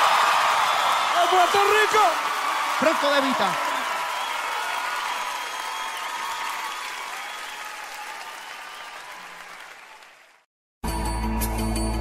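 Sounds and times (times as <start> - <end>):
audience applauding and cheering: 0.0 - 10.5.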